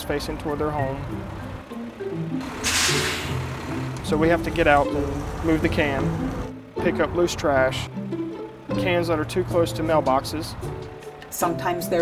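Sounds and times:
background music with held notes: 0.0s - 12.0s
short burst of hiss: 2.5s - 3.4s.

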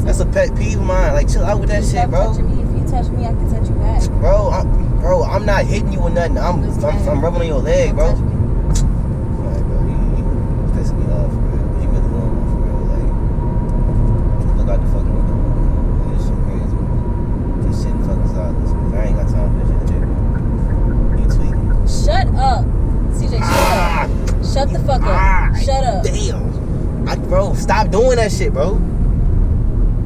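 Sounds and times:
car road and engine rumble: 0.0s - 30.0s.

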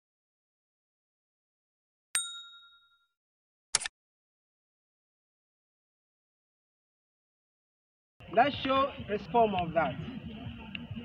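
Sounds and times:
bell-like notification ding: 2.2s - 3.1s
short sharp click: 3.7s - 3.9s.

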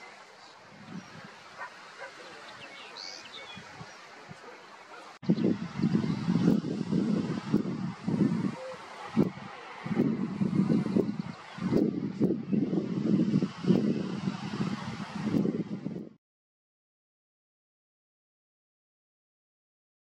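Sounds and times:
wind buffeting microphone: 0.6s - 4.5s, 5.2s - 16.2s.

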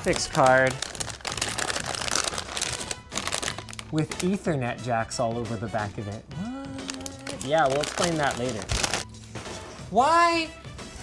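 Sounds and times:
plastic wrapping crinkling: 0.0s - 4.2s, 6.8s - 9.1s.

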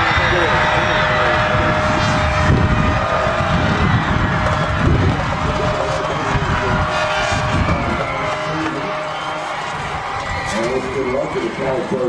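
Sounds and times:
crowd noise: 0.0s - 12.0s
wind buffeting microphone: 0.0s - 12.0s.

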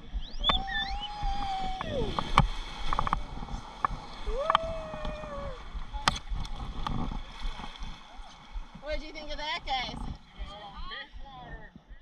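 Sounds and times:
river water rushing and gurgling: 0.4s - 10.7s.

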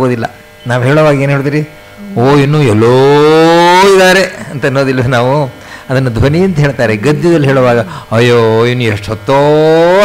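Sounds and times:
man speaking: 0.0s - 10.0s
man singing a long note: 2.0s - 3.8s.

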